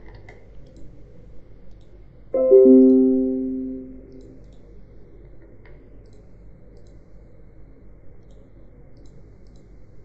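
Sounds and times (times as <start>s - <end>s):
notification chime: 2.4s - 4.2s.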